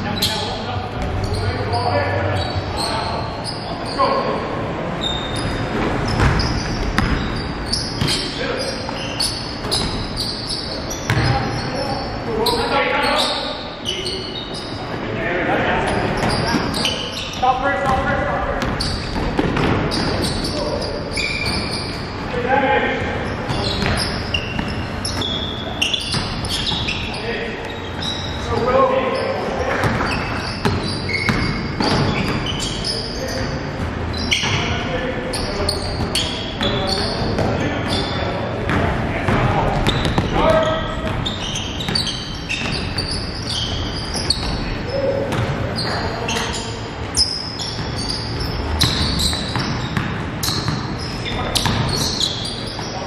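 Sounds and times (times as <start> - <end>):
basketball bouncing on hardwood floor: 6.1 - 7.3, 11.1 - 11.4, 51.6 - 52.1.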